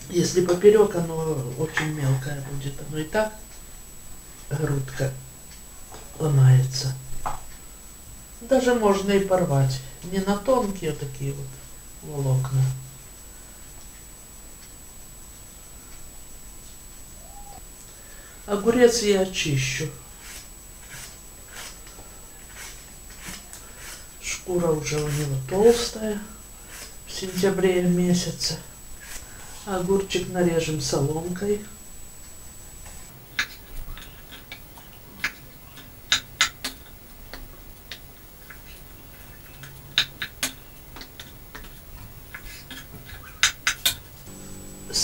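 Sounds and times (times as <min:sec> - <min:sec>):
peeler scraping cucumber skin: 0:20.2 - 0:21.8, 0:22.5 - 0:24.1.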